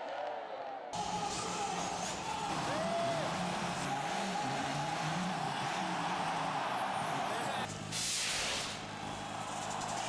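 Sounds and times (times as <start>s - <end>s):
rally car engine running hard: 1.0s - 8.0s.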